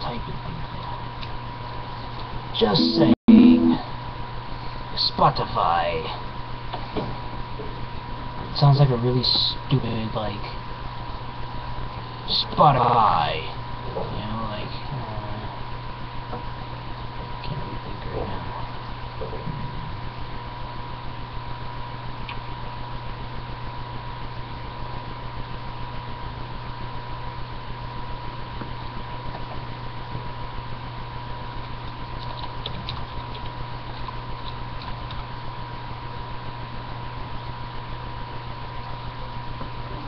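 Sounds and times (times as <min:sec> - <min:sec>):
electrical hum and hiss: 0:00.0 - 0:40.0
thin constant whine: 0:00.0 - 0:40.0.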